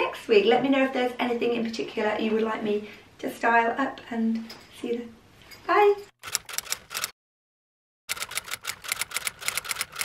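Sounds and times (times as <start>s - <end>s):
typewriter key clicks: 6.2s - 7.1s, 8.1s - 10.0s.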